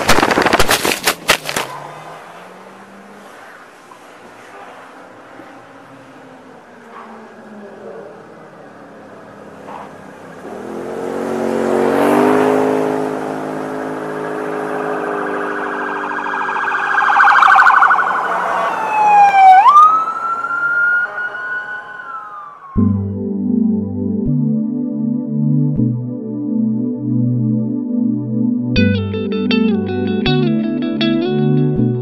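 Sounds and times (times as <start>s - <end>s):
vehicle engine: 0.0s - 24.2s
police siren: 4.5s - 28.7s.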